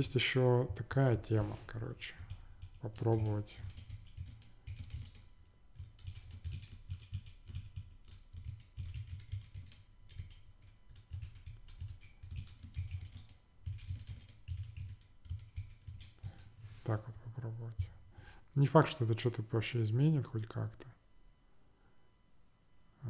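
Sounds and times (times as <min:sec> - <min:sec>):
typing on a keyboard: 0:02.1 - 0:16.5.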